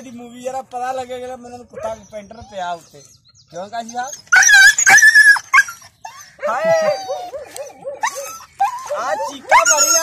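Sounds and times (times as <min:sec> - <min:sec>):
dog whimpering: 0:03.8 - 0:10.0
dog yelping: 0:03.8 - 0:10.0.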